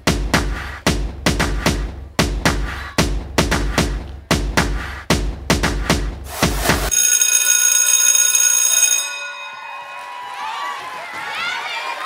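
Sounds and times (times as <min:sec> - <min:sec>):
hip-hop dance beat: 0:00.0 - 0:06.9
audience cheering and whooping: 0:09.8 - 0:12.0.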